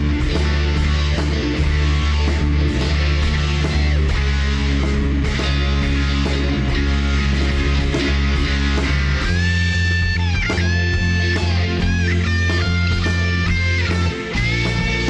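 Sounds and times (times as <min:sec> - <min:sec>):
bass guitar: 0:00.0 - 0:15.0
lead guitar with bends: 0:00.0 - 0:15.0
strummed electric guitar chords: 0:00.0 - 0:15.0.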